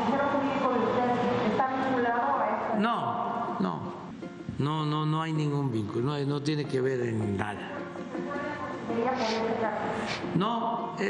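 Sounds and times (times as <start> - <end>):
woman asking a question: 0.0 - 2.8, 7.8 - 10.1.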